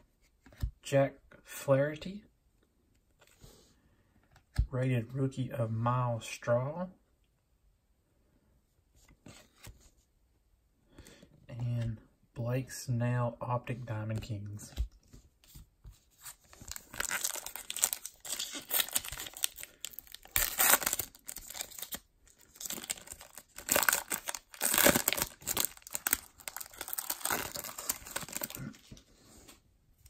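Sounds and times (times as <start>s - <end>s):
foil wrapper crinkling and tearing: 16.6s - 28.6s.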